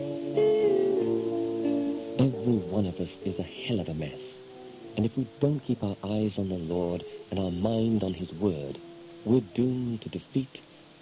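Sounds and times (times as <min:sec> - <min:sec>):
soft music: 0:00.0 - 0:11.0.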